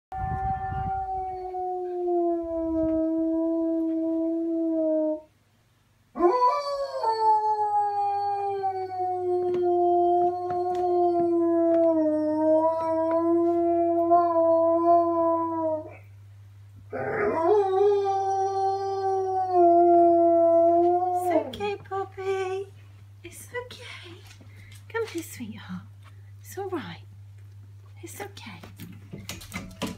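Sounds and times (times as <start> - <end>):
dog howling: 6.2 - 16.0, 16.9 - 21.5.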